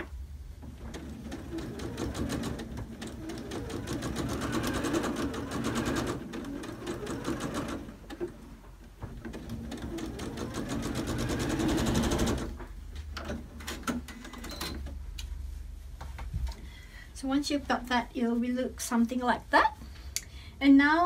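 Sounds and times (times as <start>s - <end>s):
sewing machine stitching: 0.6s - 8.5s, 9.2s - 12.6s.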